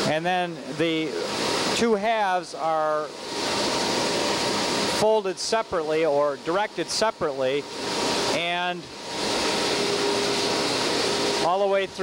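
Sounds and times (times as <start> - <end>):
printing press running: 0.0 - 12.0.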